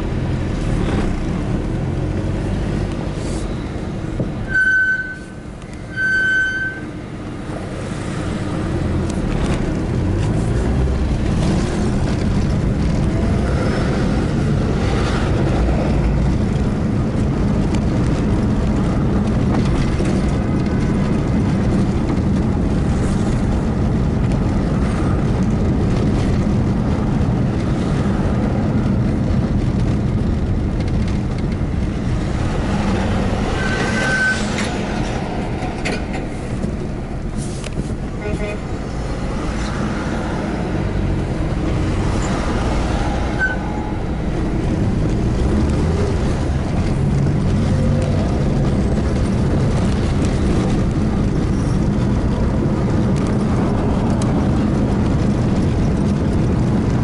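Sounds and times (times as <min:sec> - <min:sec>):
car engine and road rumble: 0:00.0 - 0:57.0
brief high-pitched tones: 0:04.5 - 0:06.9.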